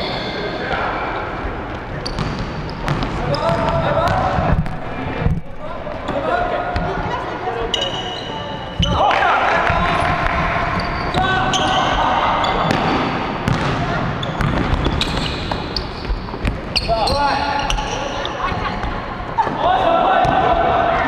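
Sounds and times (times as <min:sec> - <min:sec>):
sneakers squeaking: 0:00.0 - 0:19.6
players shouting: 0:08.5 - 0:13.2, 0:19.4 - 0:21.0
basketball bouncing: 0:12.6 - 0:16.7.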